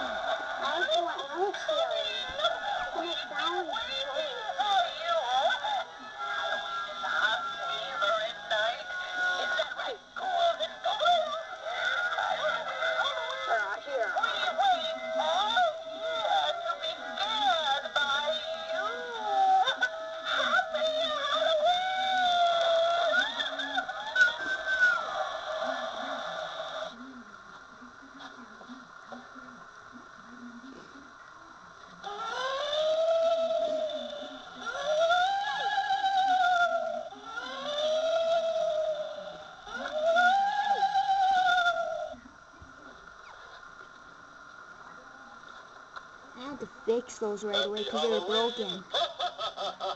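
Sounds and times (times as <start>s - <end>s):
spooky music from small speaker: 0.0s - 27.0s
electronic ghost wail: 14.2s - 27.0s, 32.0s - 42.3s.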